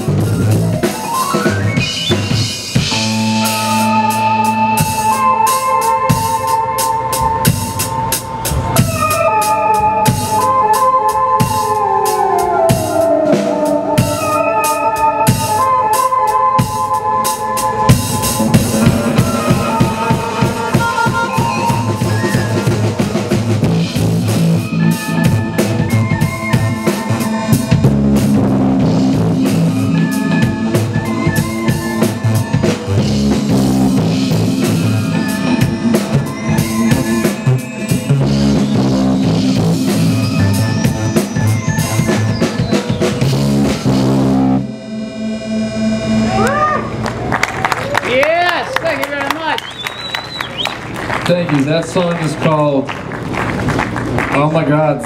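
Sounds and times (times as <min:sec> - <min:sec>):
drum kit: 0:00.0 - 0:45.6
electric guitar: 0:00.0 - 0:48.0
bass guitar: 0:00.0 - 0:55.0
keyboards: 0:00.0 - 0:55.0
tone rising in pitch: 0:17.4 - 0:47.1.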